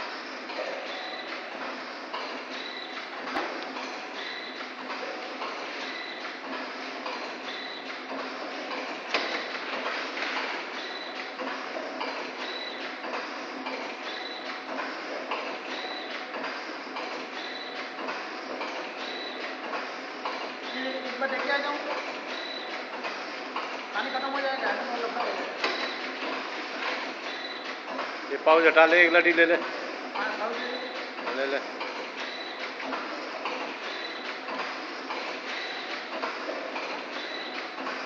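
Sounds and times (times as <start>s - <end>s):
packing machine clatter: 0.0s - 38.0s.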